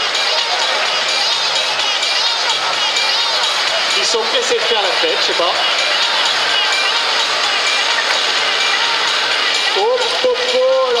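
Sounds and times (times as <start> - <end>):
crowd chattering: 0.0 - 11.0.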